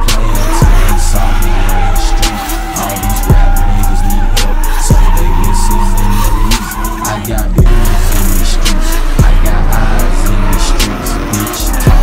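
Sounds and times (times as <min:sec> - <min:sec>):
music beat: 0:00.0 - 0:12.0
tyres squealing: 0:00.0 - 0:12.0.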